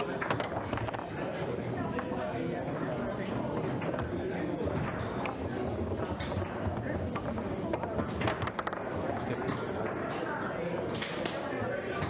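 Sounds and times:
murmur of background voices: 0:00.0 - 0:12.0
foosball ball clicking: 0:06.0 - 0:09.0.

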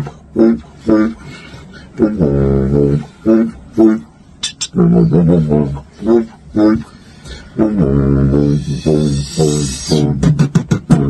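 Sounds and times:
beatbox vocal bass tone: 0:00.0 - 0:11.0
beatbox snare hits: 0:04.4 - 0:04.8, 0:08.6 - 0:11.0.

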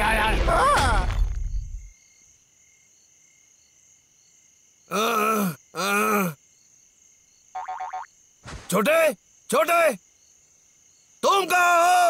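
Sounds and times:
night insects chirring: 0:00.0 - 0:12.0.

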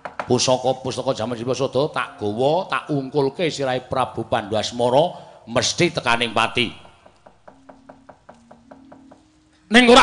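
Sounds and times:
wooden knocks on wooden chest: 0:00.0 - 0:00.5, 0:06.7 - 0:09.4.

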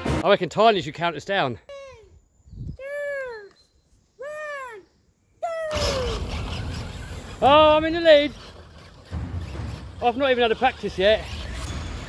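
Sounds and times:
child calling out countdown: 0:04.2 - 0:05.8
burst of noise: 0:05.7 - 0:12.0.

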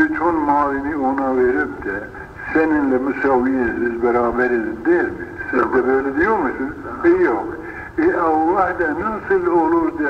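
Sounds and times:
man speaking on old recording: 0:00.0 - 0:10.0.

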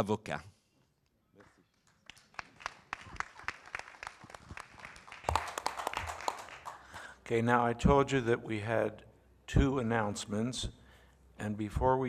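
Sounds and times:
audience applauding: 0:01.8 - 0:07.1.

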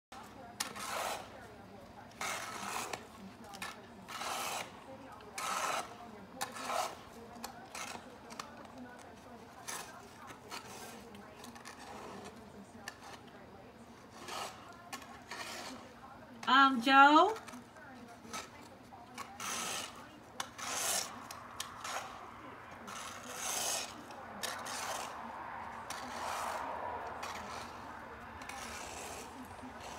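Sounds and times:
snow shovel scraping snow: 0:00.2 - 0:01.4, 0:02.2 - 0:08.4, 0:09.4 - 0:13.3, 0:13.9 - 0:16.0, 0:19.2 - 0:25.3, 0:25.9 - 0:29.9.

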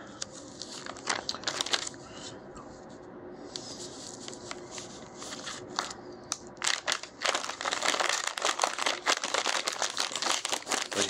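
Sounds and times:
plastic packet crinkling: 0:00.6 - 0:02.0, 0:06.6 - 0:11.0.

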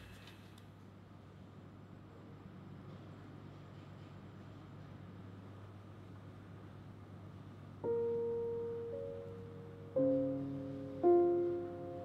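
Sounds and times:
soft piano notes ringing: 0:07.8 - 0:12.0.

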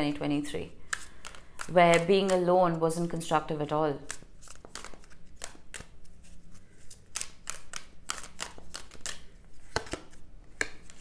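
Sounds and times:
cards being shuffled: 0:00.8 - 0:02.6, 0:04.0 - 0:11.0.

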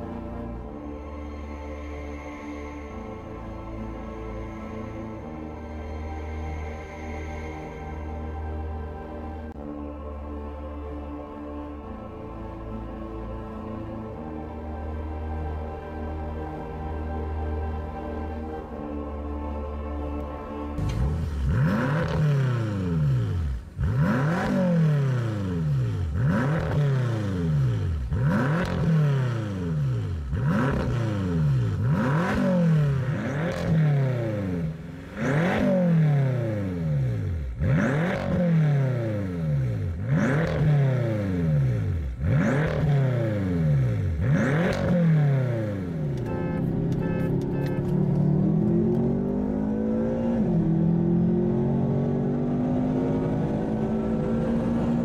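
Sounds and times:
cars driving: 0:16.1 - 0:55.0
car engine revving: 0:20.8 - 0:55.0.

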